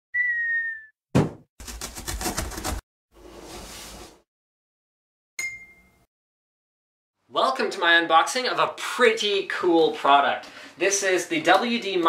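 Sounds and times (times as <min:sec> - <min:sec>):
falling cartoon whistle: 0:00.1 - 0:01.0
cardboard box thump: 0:01.2 - 0:02.8
box-cutter slicing tape: 0:01.6 - 0:02.8.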